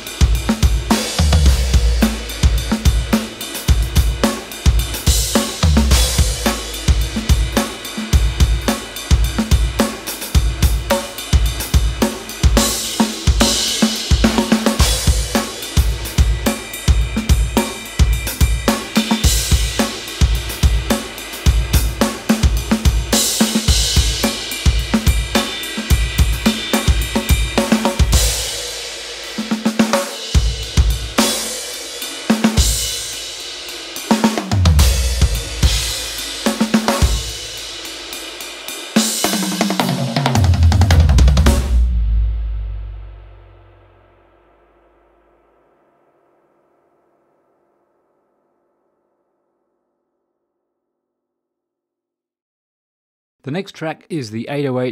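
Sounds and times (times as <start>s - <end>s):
rock drum beat: 0.0s - 44.2s
low tom hits: 40.8s - 43.7s.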